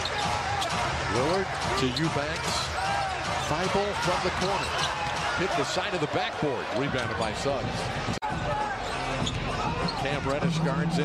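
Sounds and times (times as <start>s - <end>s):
arena noise: 0.0s - 11.0s.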